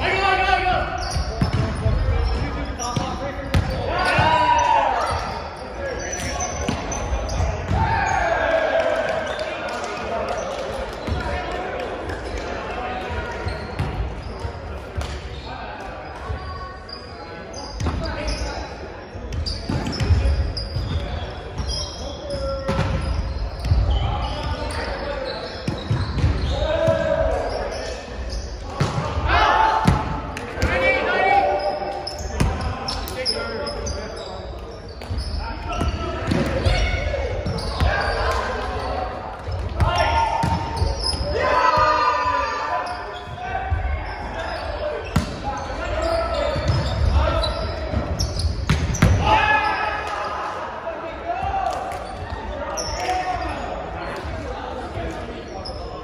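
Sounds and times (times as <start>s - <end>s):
players shouting: 0.0s - 10.0s, 23.8s - 34.3s, 35.4s - 54.9s
sneakers squeaking: 0.0s - 50.6s, 51.3s - 56.0s.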